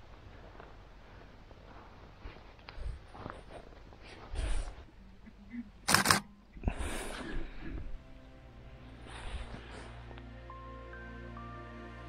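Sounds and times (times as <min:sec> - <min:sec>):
camera shutter clicking: 0:05.8 - 0:06.3.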